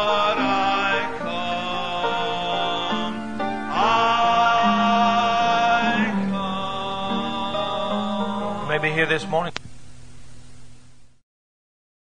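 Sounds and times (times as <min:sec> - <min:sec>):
congregation singing a hymn: 0:00.0 - 0:09.3.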